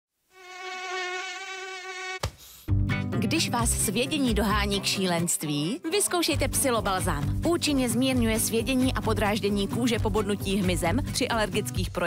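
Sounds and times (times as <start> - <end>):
mosquito whining: 0.3 - 2.3.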